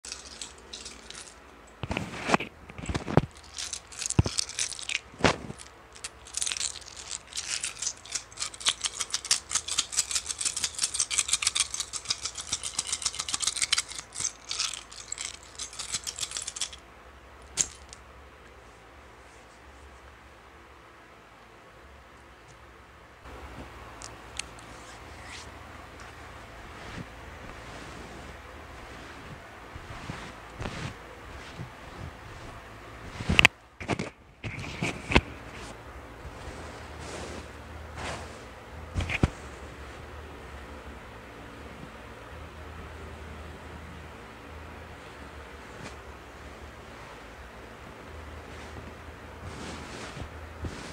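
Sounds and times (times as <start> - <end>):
hands swishing across cloth: 24.6 - 33.5, 34.6 - 40.0, 48.4 - 50.9.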